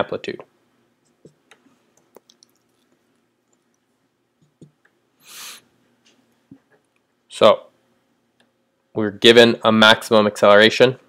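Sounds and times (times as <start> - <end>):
marker stroke on whiteboard: 1.0 - 1.5.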